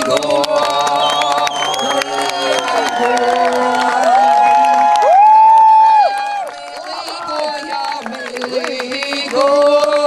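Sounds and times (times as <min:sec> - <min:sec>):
group of voices singing: 0:00.0 - 0:05.0, 0:06.4 - 0:10.0.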